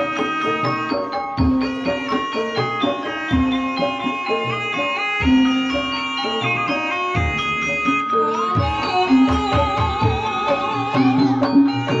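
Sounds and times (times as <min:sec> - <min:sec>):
struck pitched percussion ringing: 0:00.0 - 0:12.0.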